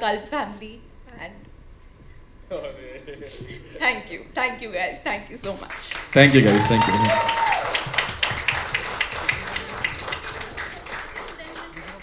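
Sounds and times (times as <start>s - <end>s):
many people clapping: 5.5s - 12.0s.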